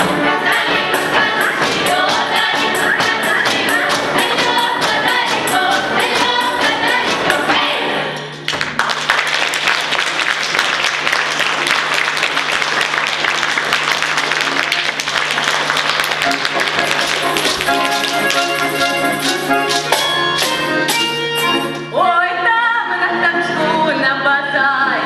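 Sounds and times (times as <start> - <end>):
music: 0.0 - 25.0
audience applauding: 8.5 - 20.1.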